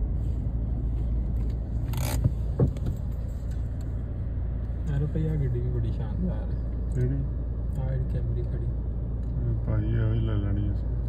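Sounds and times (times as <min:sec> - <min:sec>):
car rumble inside cabin: 0:00.0 - 0:11.0.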